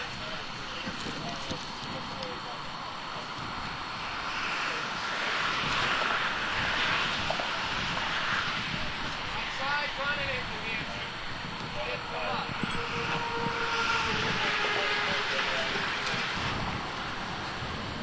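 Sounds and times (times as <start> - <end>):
passing vehicle rushing: 3.2 - 18.0.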